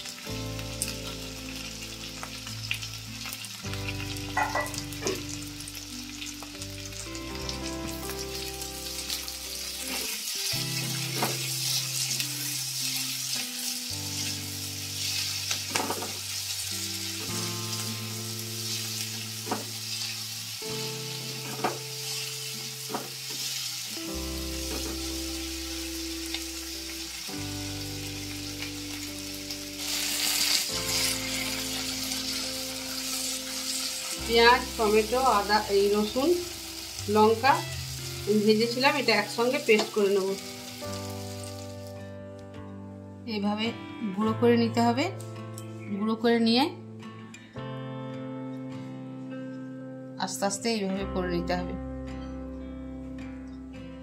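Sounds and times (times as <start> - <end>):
vegetables sizzling in hot oil: 0.0 - 42.0
soft background music: 0.0 - 54.0.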